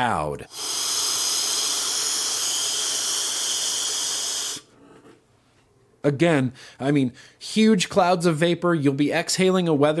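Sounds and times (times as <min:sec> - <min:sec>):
airy hiss of vape drag: 0:00.5 - 0:04.7.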